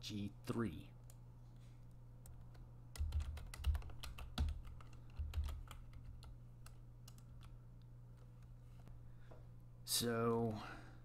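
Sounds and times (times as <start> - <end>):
computer keyboard typing: 2.2 - 7.6.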